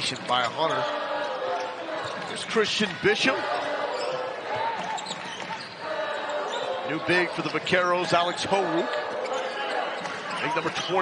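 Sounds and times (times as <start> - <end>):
sneaker squeaks: 0.0 - 0.9, 3.5 - 11.0
crowd murmur: 0.6 - 11.0.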